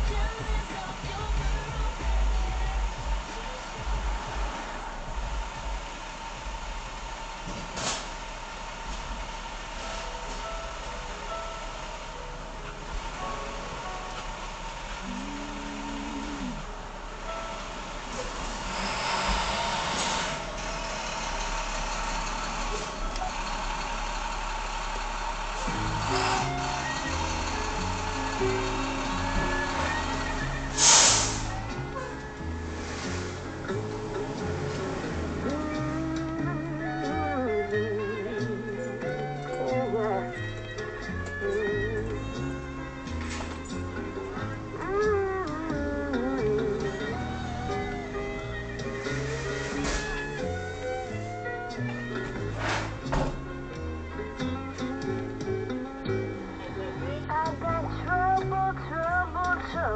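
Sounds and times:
song with bass line: 0:00.0 - 0:07.2, 0:09.8 - 0:24.0, 0:25.4 - 0:59.9
street traffic: 0:00.0 - 0:59.9
truck engine passing: 0:00.0 - 0:59.9
wavering lead melody: 0:09.8 - 0:52.6
brief low tone: 0:15.0 - 0:16.7
short hiss: 0:30.7 - 0:31.6.

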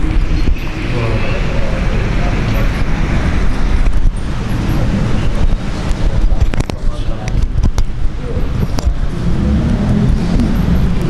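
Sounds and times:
microphone handling rumble: 0:00.0 - 0:11.0.

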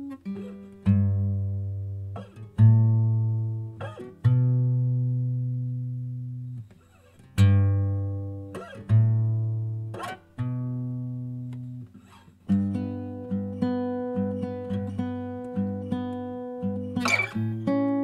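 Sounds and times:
strummed guitar chords: 0:12.5 - 0:18.0.

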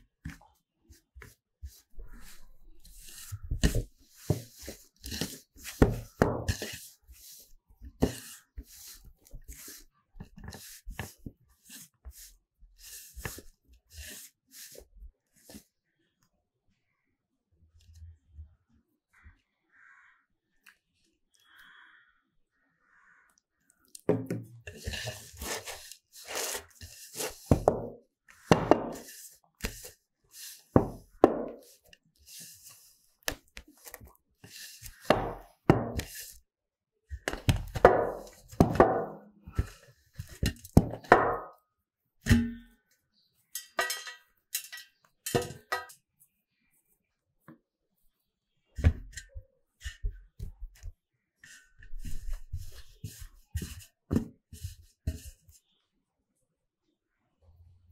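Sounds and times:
crow cawing: 0:19.2 - 0:20.3, 0:21.4 - 0:23.3
metal plate clanking: 0:42.3 - 0:42.7, 0:43.6 - 0:45.9.

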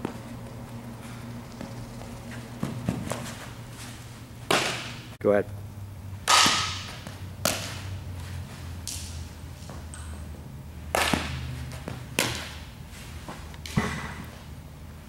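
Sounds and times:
steady low hum: 0:00.0 - 0:15.0
softball hitting bat: 0:04.5 - 0:05.0, 0:06.2 - 0:07.9, 0:10.9 - 0:12.6.

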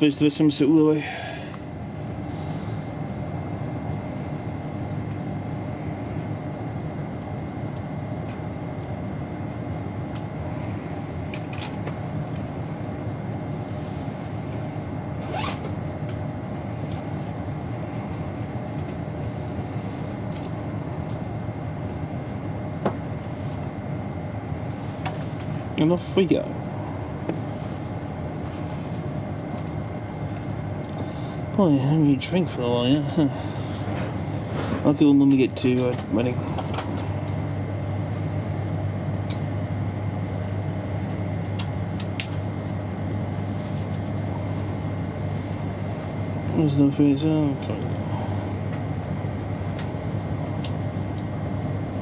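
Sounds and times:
train carriage hum: 0:00.0 - 0:52.0.

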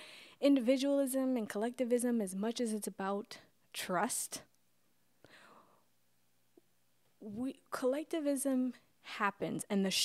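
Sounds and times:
soft breath: 0:05.2 - 0:05.9.

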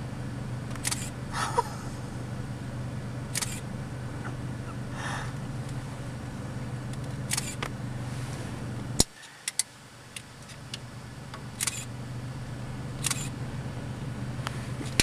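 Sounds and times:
low engine-like hum: 0:00.0 - 0:15.0.

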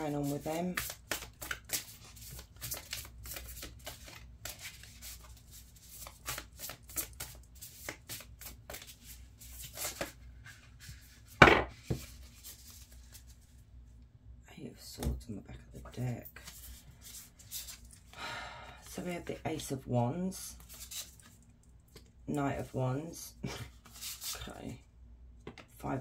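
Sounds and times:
cards being shuffled: 0:00.0 - 0:13.5, 0:16.4 - 0:18.1, 0:20.6 - 0:21.4, 0:23.7 - 0:24.5.

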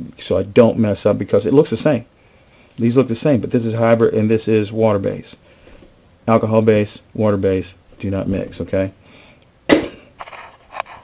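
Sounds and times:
person coughing: 0:09.7 - 0:10.1.

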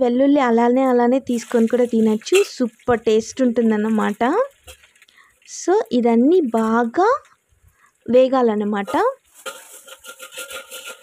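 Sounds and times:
hot oil sizzling in pan: 0:01.2 - 0:07.1, 0:08.6 - 0:11.0.

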